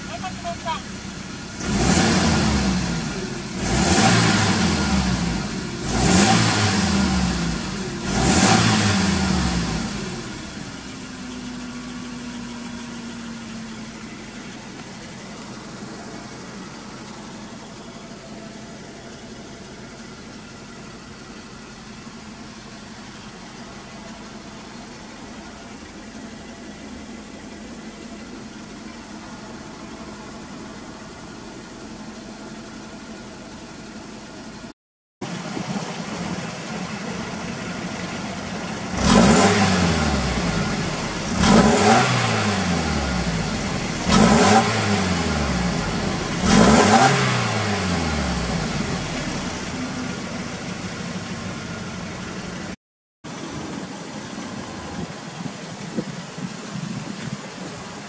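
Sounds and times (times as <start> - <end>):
car engine revving and idling: 0.0 - 58.0.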